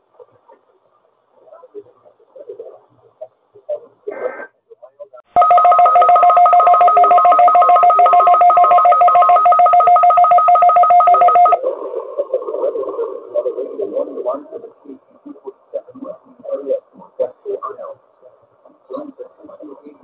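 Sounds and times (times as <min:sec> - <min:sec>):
pulsing two-tone electronic alarm beep: 0:05.4 - 0:11.6.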